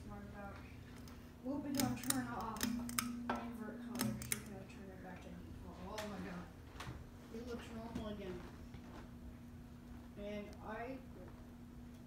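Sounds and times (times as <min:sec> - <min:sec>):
ceiling fan humming: 0:00.0 - 0:12.0
sharp ticks: 0:01.7 - 0:03.2, 0:03.9 - 0:04.6.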